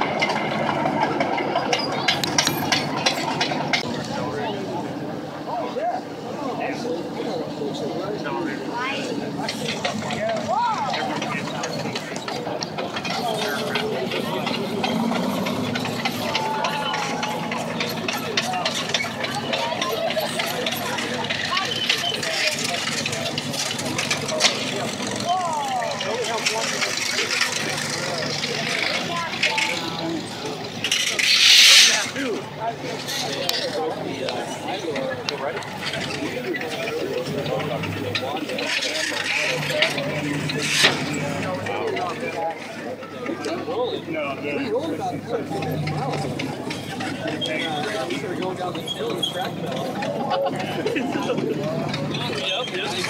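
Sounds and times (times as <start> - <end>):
crowd chatter: 0.0 - 53.0
tank diesel engine running: 0.0 - 53.0.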